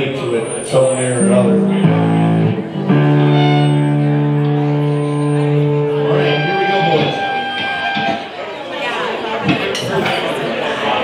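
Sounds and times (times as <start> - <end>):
high sustained note: 0.0 - 8.4
crowd chatter: 0.0 - 11.0
electric guitars chord: 0.8 - 8.4.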